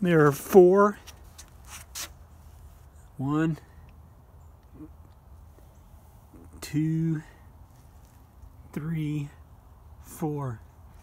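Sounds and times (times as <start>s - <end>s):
soft rustles: 7.6s - 8.5s.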